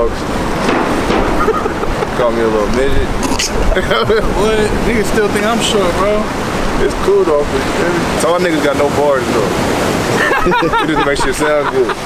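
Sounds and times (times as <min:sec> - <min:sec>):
surf washing against seawall: 0:00.0 - 0:12.0
wind rumbling on microphone: 0:00.0 - 0:12.0.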